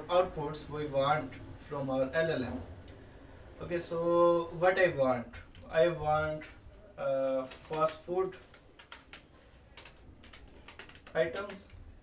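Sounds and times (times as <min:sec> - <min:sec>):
light keyboard keystrokes: 0:05.5 - 0:06.0, 0:07.2 - 0:11.8.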